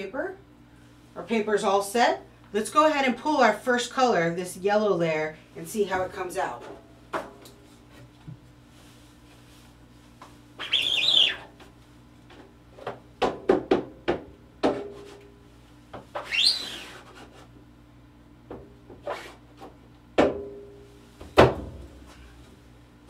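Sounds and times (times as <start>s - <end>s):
squeegee squeaking across screen mesh: 16.2s - 17.0s.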